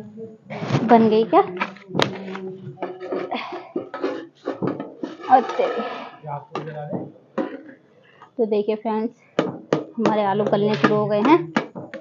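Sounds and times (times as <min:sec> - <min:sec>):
people talking: 0:00.0 - 0:03.8, 0:05.3 - 0:07.1, 0:08.4 - 0:09.1, 0:10.0 - 0:12.0.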